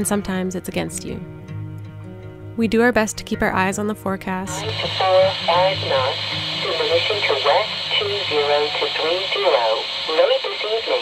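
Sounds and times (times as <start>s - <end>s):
steady radio hiss: 4.5s - 11.0s
voice over radio speaker: 4.5s - 11.0s.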